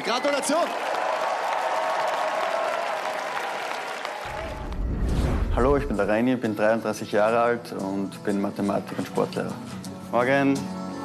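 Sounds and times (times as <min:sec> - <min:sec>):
studio audience applauding: 0:00.0 - 0:04.9
deep low rumble: 0:04.3 - 0:06.1.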